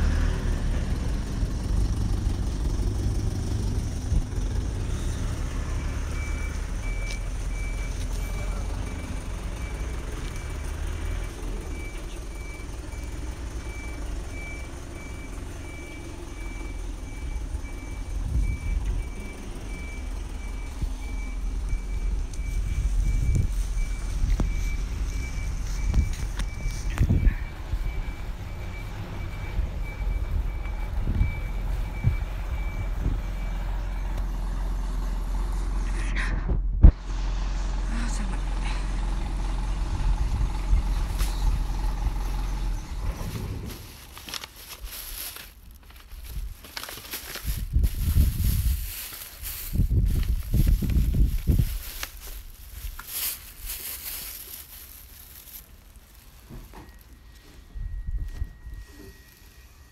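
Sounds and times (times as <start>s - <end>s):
truck reversing beeper: 0.0s - 35.9s, 37.1s - 43.9s, 55.4s - 59.9s
truck engine running: 0.0s - 59.9s.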